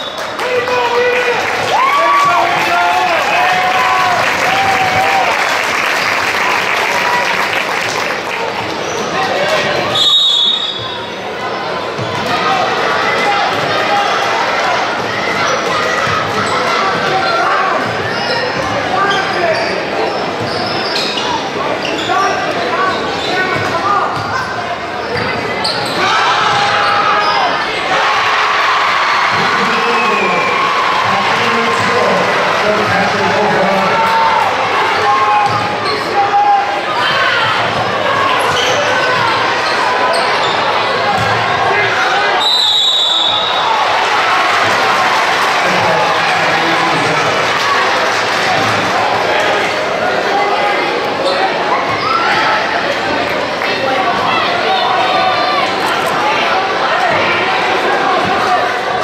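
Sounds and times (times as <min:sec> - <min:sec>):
crowd chatter and shouts: 0:00.0 - 0:59.0.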